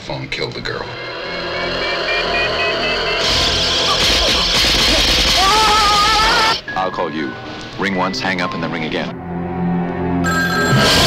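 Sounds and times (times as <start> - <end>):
electronic drone: 0.6 - 5.9
pulsing tone rising in pitch: 0.7 - 4.7.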